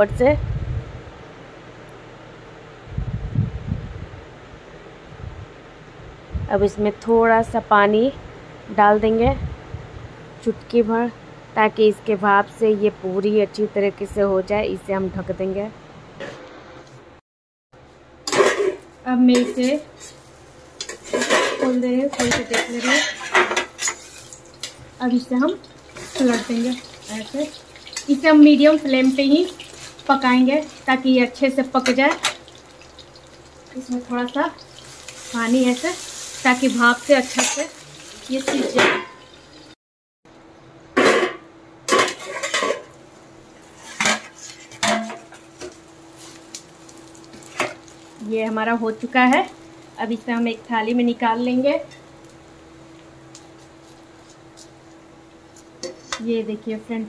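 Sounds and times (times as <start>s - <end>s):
metal plate clanking on pan: 20.8s - 24.7s, 38.4s - 39.4s, 41.0s - 42.9s, 43.9s - 45.4s.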